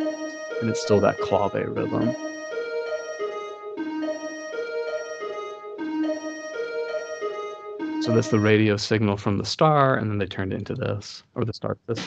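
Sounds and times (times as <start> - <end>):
synthesized keyboard-like notes: 0.0 - 11.0.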